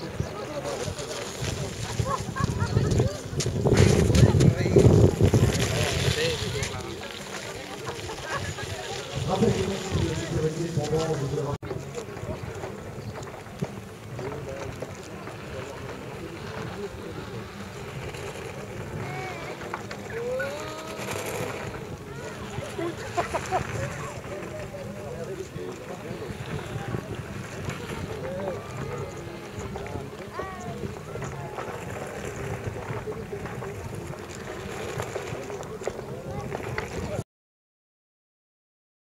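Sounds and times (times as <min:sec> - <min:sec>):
distant voices: 0:00.0 - 0:37.2
wind buffeting microphone: 0:00.0 - 0:37.2.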